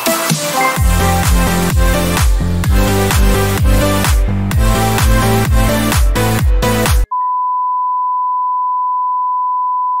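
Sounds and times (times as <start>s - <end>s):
electronic dance music: 0.0s - 7.1s
long electronic beep: 7.1s - 10.0s.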